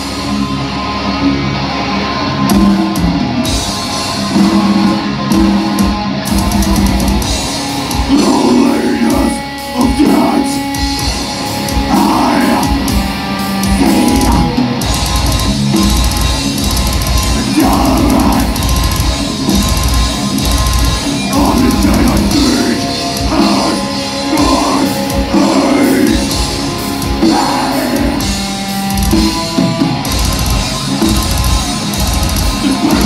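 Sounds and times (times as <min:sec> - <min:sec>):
distorted electric guitars: 0:00.0 - 0:33.0
drum kit: 0:02.4 - 0:33.0
person singing: 0:08.1 - 0:10.7, 0:11.8 - 0:13.0, 0:13.6 - 0:14.6, 0:17.4 - 0:18.6, 0:21.3 - 0:26.4, 0:27.2 - 0:28.3, 0:32.6 - 0:33.0.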